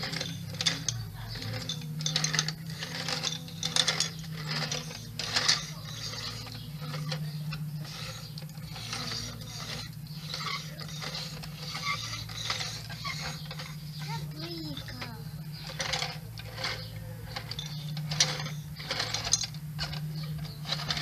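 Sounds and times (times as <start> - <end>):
steady low hum: 0.0 - 21.0
toy wheels ratcheting clicks: 0.0 - 21.0.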